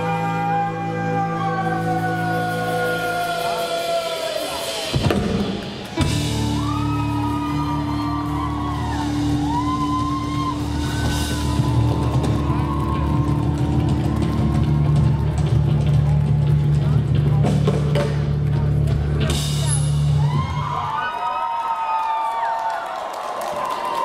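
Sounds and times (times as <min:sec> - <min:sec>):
person singing: 0:00.0 - 0:04.8
bass: 0:00.0 - 0:21.2
drums: 0:00.0 - 0:24.0.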